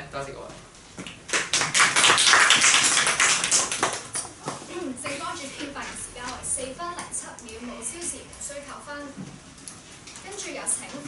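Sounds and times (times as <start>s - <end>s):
people clapping: 1.0s - 4.6s.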